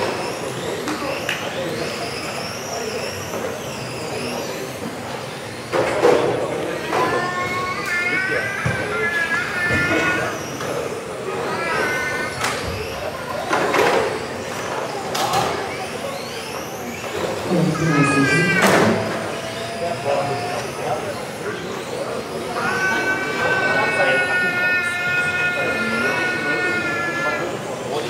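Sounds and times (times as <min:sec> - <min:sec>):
electric motors whining: 0:00.0 - 0:28.0.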